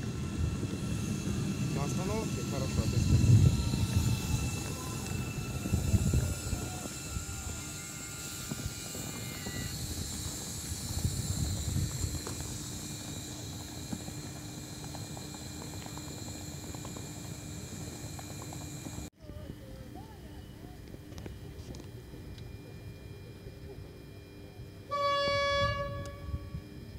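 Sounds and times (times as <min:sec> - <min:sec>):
electric motor whine: 0:00.0 - 0:19.1, 0:20.8 - 0:26.9
train wheels rumbling on rails: 0:00.0 - 0:19.1.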